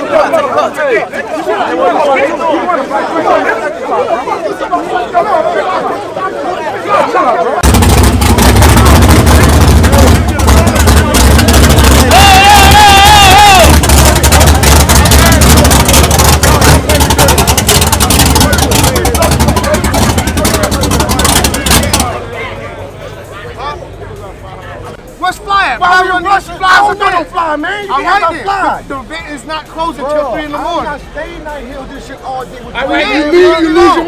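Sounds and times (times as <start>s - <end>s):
crowd voices: 0.0s - 34.0s
drag car engine running loud: 7.6s - 22.2s.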